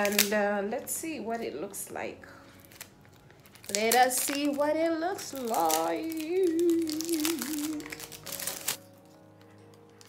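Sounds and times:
box snapping open: 0.0s - 0.3s
packaging crinkling and clicking: 0.0s - 0.4s, 2.5s - 10.0s
faint background music: 0.0s - 10.0s.

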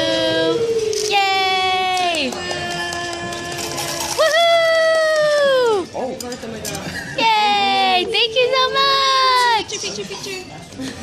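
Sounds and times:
person singing long held notes: 0.0s - 4.2s.

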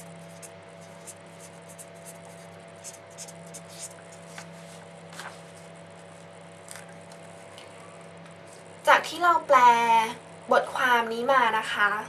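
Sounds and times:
pen scratching on paper: 0.0s - 4.2s
low electrical hum: 0.0s - 12.0s.

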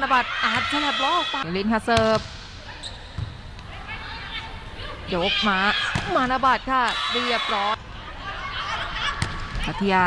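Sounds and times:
volleyball arena background: 0.0s - 10.0s.

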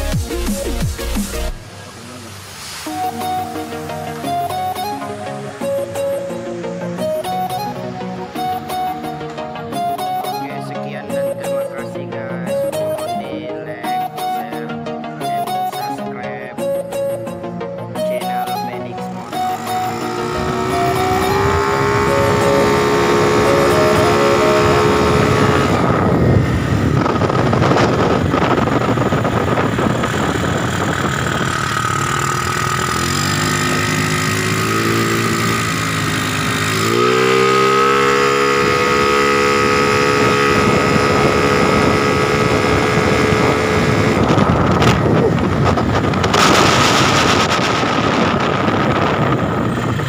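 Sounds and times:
scooter engine accelerating: 0.0s - 11.6s, 18.0s - 50.0s
wind noise: 19.5s - 33.4s, 38.3s - 50.0s.

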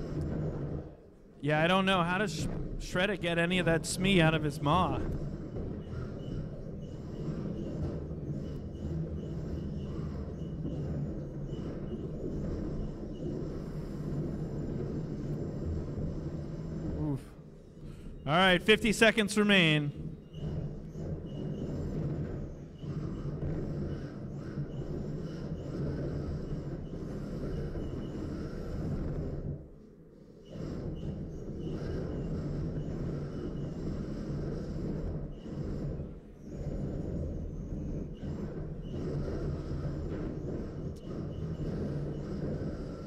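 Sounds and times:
robots pushing hum and rumble: 0.0s - 43.0s.

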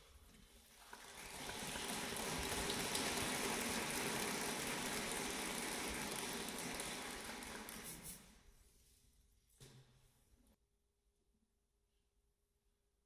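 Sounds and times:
audience applauding: 0.8s - 8.2s.

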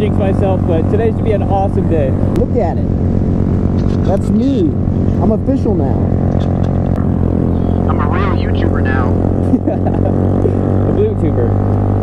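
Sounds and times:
motorcycle engine droning: 0.0s - 12.0s.

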